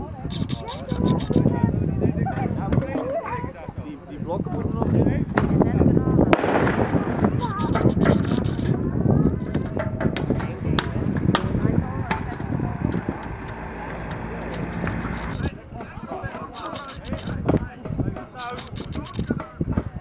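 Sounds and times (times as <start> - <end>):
people talking: 0.0 - 20.0
carbide cannon bangs: 6.3 - 7.6.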